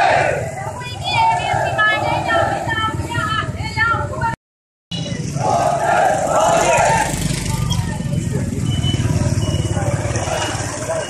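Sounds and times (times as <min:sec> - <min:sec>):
marchers' voices: 0:00.0 - 0:04.4, 0:05.0 - 0:11.0
motorcycle engine running: 0:05.0 - 0:11.0.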